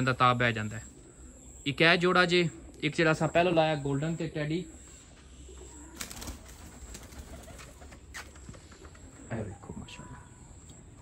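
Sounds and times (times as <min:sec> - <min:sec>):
pigeons cooing: 0:00.0 - 0:11.0
wings fluttering: 0:05.6 - 0:09.3.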